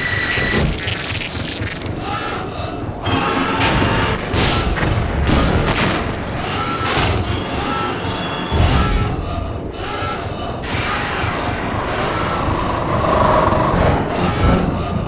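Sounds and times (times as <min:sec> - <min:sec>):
booms: 0:00.0 - 0:07.5, 0:10.5 - 0:15.0
heavy rumble: 0:08.9 - 0:15.0
dramatic music: 0:10.4 - 0:15.0.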